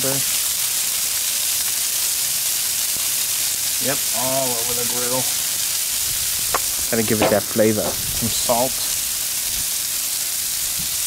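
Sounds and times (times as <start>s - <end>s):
vegetables sizzling on a griddle: 0.0s - 11.0s.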